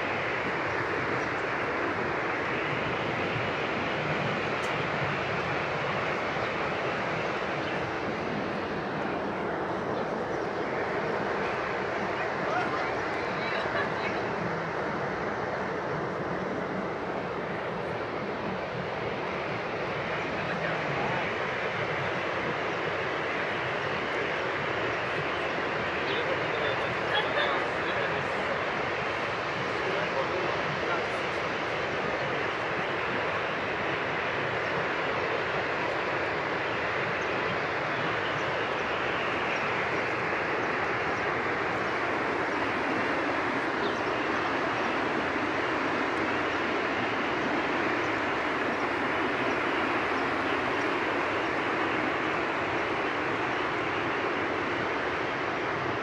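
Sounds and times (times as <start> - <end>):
waterfall roaring: 0.0 - 56.0.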